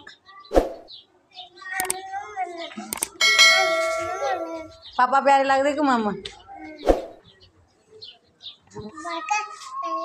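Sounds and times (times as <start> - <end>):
bell chime: 3.2 - 4.8.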